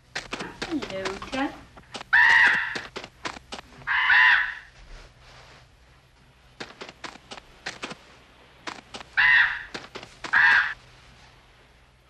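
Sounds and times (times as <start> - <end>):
crow cawing: 2.1 - 2.9, 3.8 - 4.7, 9.2 - 10.8.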